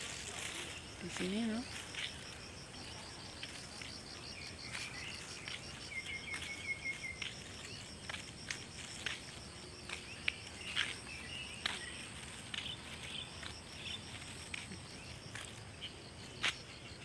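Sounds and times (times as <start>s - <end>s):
insects chirping: 0.0s - 17.0s.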